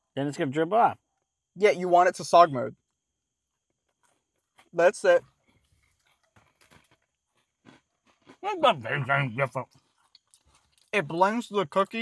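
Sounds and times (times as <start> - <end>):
person chewing cookie: 5.3 - 11.0.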